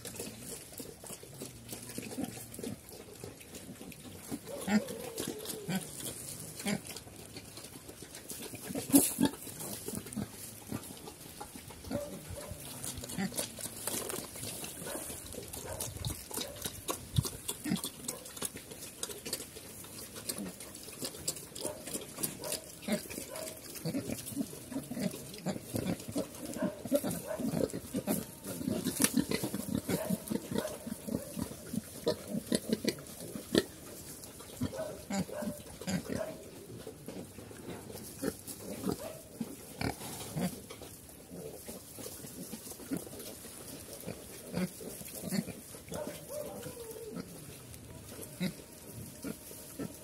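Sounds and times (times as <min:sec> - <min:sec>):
pigs grunting: 0:00.0 - 0:50.0.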